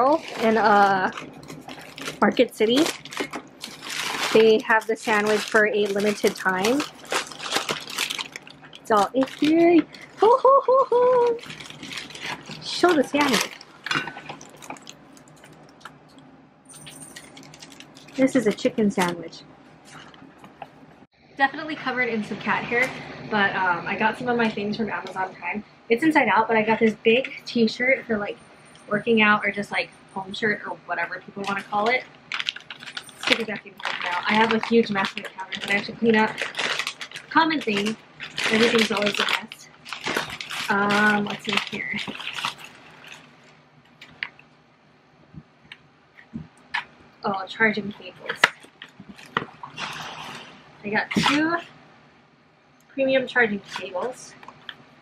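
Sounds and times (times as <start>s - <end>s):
plastic mailer bag rustling: 0.0s - 10.4s, 11.2s - 15.8s, 16.8s - 19.2s, 31.4s - 44.3s, 47.7s - 51.6s, 53.6s - 54.7s
paper wrapper crinkling: 0.0s - 16.0s, 16.9s - 19.2s, 31.4s - 44.4s, 47.8s - 51.6s.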